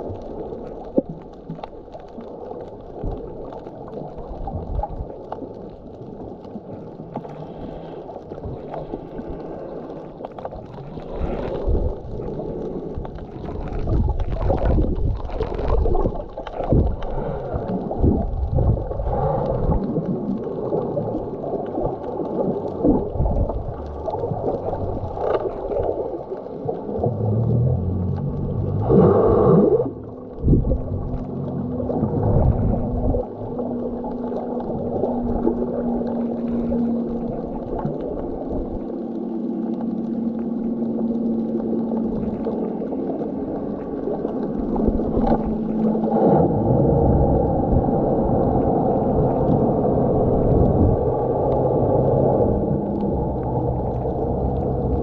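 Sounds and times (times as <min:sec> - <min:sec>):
churning water underwater: 0:00.0 - 0:55.0
low steady hum: 0:00.0 - 0:55.0
water gurgle: 0:00.0 - 0:55.0.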